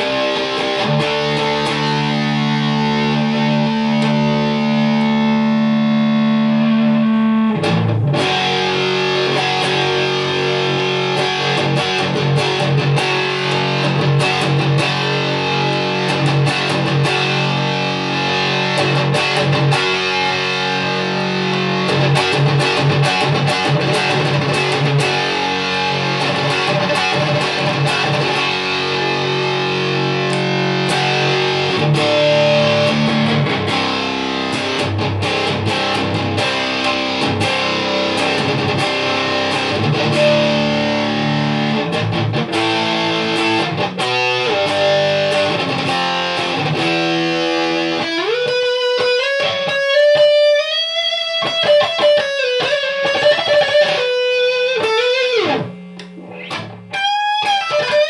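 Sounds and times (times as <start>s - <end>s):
distorted electric guitar riffs: 0.0s - 58.0s.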